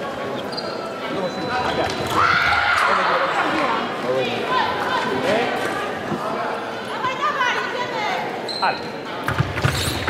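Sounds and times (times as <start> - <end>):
scattered voices in hall: 0.0 - 10.0.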